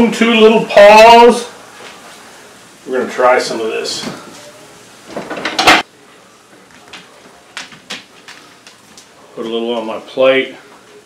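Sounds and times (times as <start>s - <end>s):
dishes clattering: 5.1s - 5.8s.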